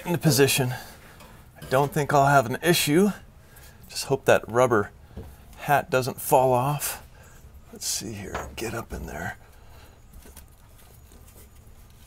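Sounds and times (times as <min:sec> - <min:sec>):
low steady hum: 0:00.0 - 0:12.0
light taps and scrapes of spring: 0:01.0 - 0:02.3.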